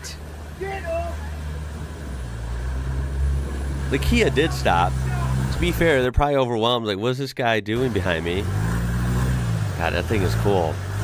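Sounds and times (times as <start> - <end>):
water washing around vehicle: 0.0 - 6.0, 7.8 - 11.0
engine droning: 0.0 - 6.1, 7.8 - 11.0.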